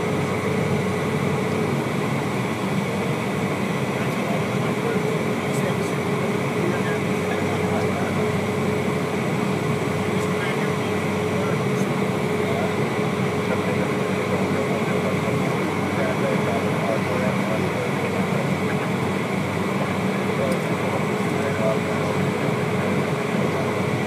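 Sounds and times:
jet engine whine: 0.0s - 24.0s
jet engines rushing hum: 0.0s - 24.0s.

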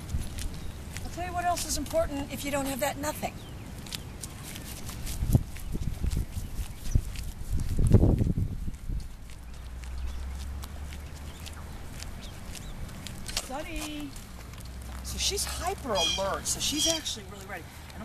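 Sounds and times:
footsteps on pavement: 0.0s - 18.0s
low rumbling on microphone: 5.1s - 13.3s.

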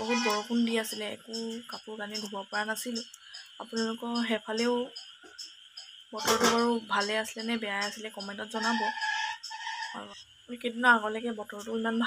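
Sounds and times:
woman speaking: 0.0s - 5.0s, 6.1s - 9.0s, 9.9s - 12.0s
insects chirping: 0.0s - 12.0s.

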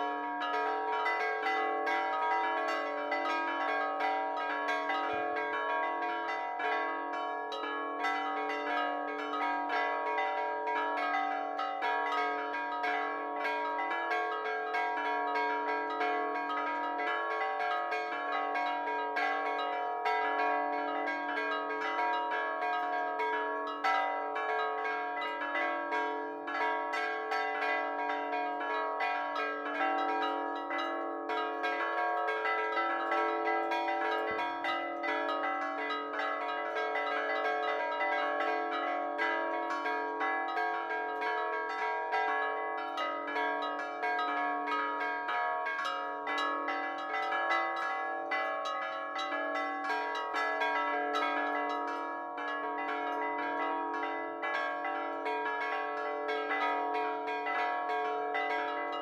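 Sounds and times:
church bells ringing: 0.0s - 59.0s.

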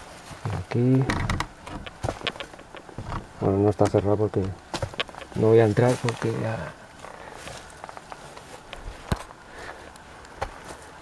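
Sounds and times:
sharp clicks: 1.1s - 3.2s, 3.8s - 5.4s
footsteps on forest path: 3.8s - 11.0s.

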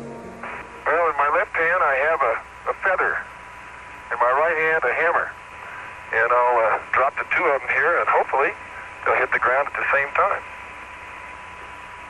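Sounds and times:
person speaking over radio: 0.4s - 3.2s, 4.1s - 5.4s, 6.1s - 10.4s
radio hiss: 0.4s - 12.0s.

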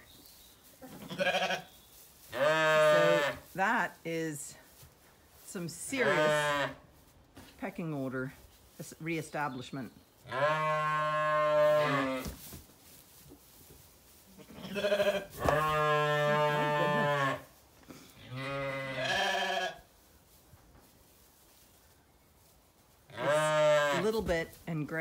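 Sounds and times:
sheep bleating: 1.1s - 1.7s, 2.4s - 3.4s, 6.0s - 6.8s, 14.4s - 17.4s, 18.2s - 19.8s, 23.1s - 24.1s.

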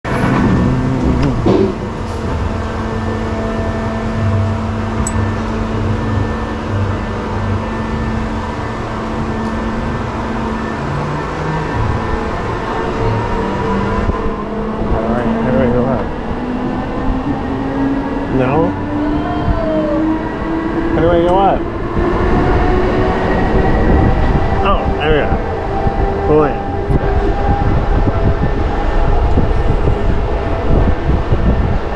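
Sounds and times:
ride machinery humming: 0.0s - 31.9s
machinery knock: 0.1s - 2.9s.

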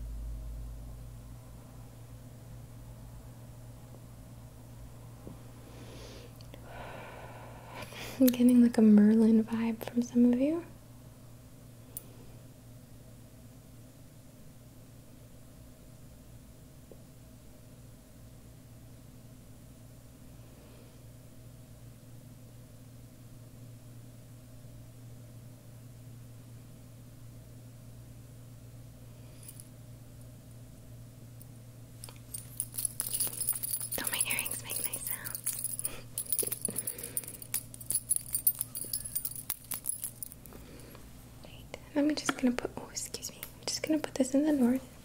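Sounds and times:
low electrical hum: 0.0s - 45.0s
crackling and light jingling: 32.0s - 41.7s
person whispering: 34.0s - 35.5s.

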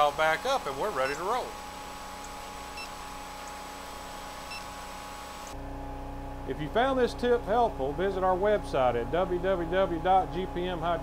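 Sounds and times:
hydraulic pump motor humming: 0.0s - 11.0s.

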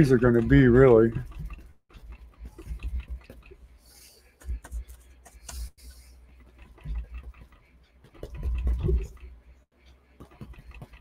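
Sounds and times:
brush dabbing paint on canvas: 1.4s - 11.0s.

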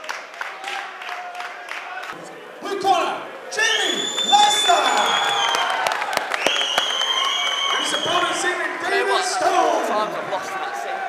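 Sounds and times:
crowd cheering and clapping: 0.0s - 11.0s
long high whistles: 3.7s - 8.4s.

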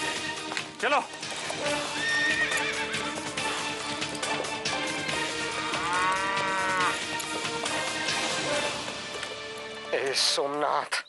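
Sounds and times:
background music: 0.0s - 11.0s
horse whinnying: 1.4s - 8.9s.

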